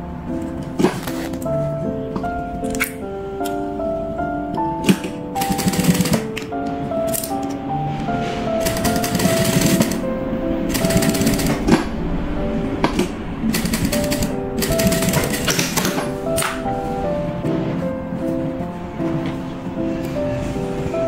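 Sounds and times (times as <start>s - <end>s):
background music: 0.0s - 21.0s
sewing machine stitching: 5.4s - 6.3s, 8.6s - 10.0s, 10.7s - 11.8s, 13.5s - 16.1s.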